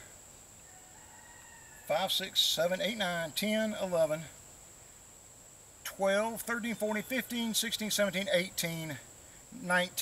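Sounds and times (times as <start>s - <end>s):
insect drone: 0.0s - 10.0s.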